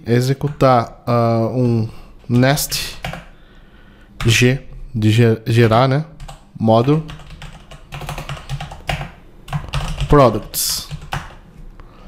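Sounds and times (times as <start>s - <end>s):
typing on computer keyboard: 2.3s - 3.3s, 6.2s - 10.2s, 10.8s - 11.4s.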